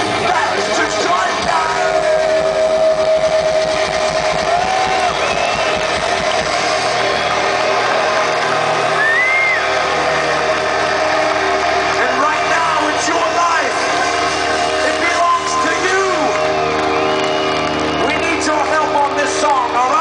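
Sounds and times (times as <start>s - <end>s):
crowd cheering and yelling: 0.0s - 20.0s
drum and bass pulse: 0.0s - 20.0s.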